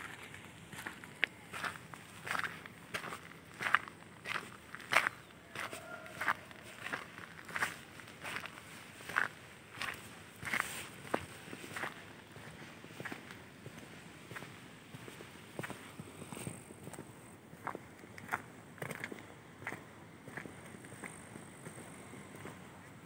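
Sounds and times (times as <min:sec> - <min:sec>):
footsteps on pavement: 0:00.0 - 0:22.8.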